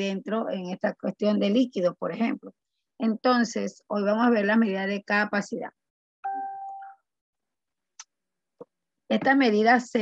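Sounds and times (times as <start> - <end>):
chime-like bell tone: 6.2 - 7.0.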